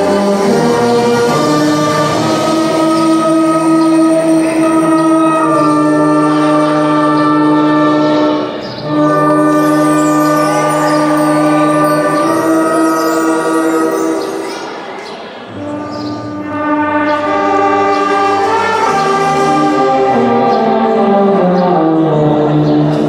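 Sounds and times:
brass band playing held chords: 0:00.0 - 0:23.0.

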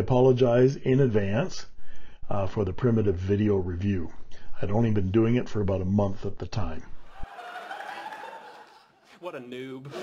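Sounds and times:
studio audience laughing: 0:07.0 - 0:09.2, 0:09.8 - 0:10.0.

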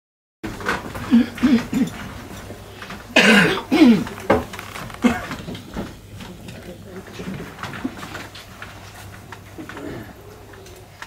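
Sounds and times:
man clearing his throat: 0:01.0 - 0:02.0, 0:03.2 - 0:04.2.

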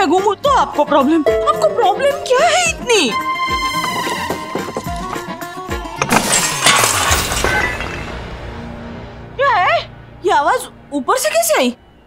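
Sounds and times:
glass breaking: 0:06.0 - 0:08.3.

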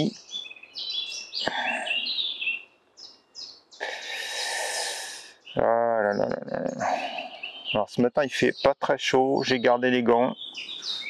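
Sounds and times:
birds chirping and warbling: 0:00.0 - 0:11.0
rustling hiss: 0:03.8 - 0:05.5.

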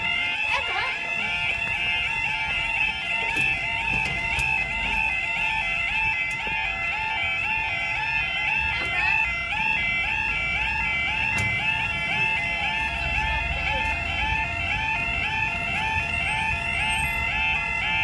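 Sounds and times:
level crossing alarm warbling: 0:00.0 - 0:18.0.

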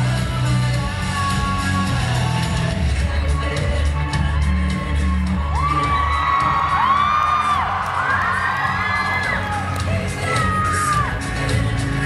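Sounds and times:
loud music over sound system: 0:00.0 - 0:12.0
audience whooping and cheering: 0:04.4 - 0:11.4.

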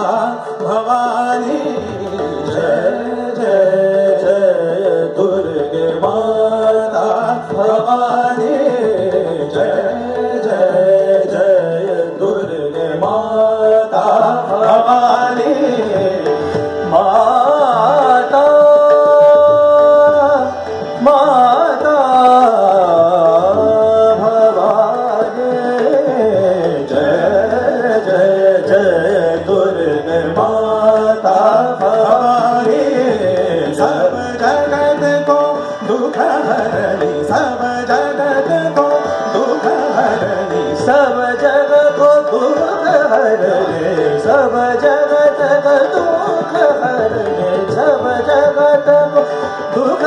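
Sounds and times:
man singing ornamented notes: 0:00.0 - 0:50.0
tabla: 0:00.0 - 0:50.0.

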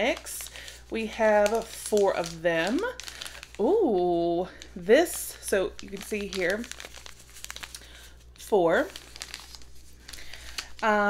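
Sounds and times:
tea bag packets crinkling: 0:00.0 - 0:11.0.

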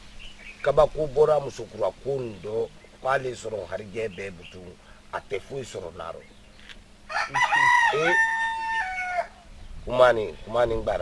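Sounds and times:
man speaking: 0:00.6 - 0:06.3, 0:07.3 - 0:08.2, 0:09.9 - 0:11.0
rooster crowing: 0:07.0 - 0:09.5.

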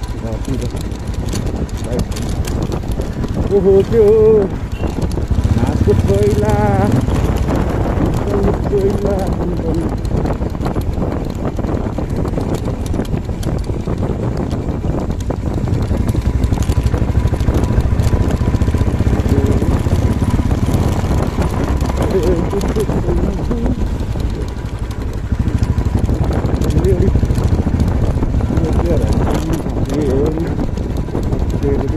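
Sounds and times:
motorcycle engine running: 0:00.0 - 0:31.9.

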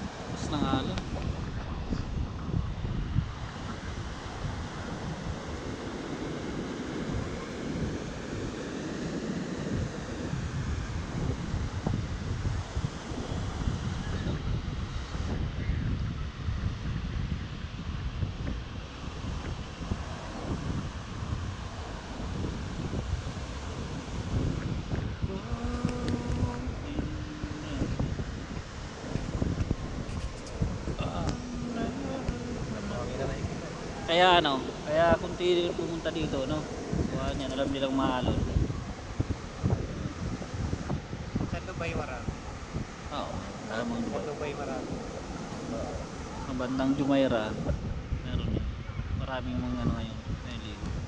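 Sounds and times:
surf breaking on beach: 0:00.0 - 0:51.0
wind buffeting microphone: 0:00.0 - 0:51.0.

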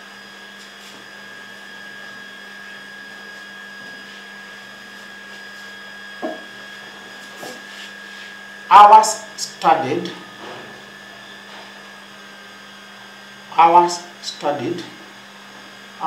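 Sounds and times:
high whine: 0:00.0 - 0:15.2
background hum and hiss: 0:00.0 - 0:16.0.

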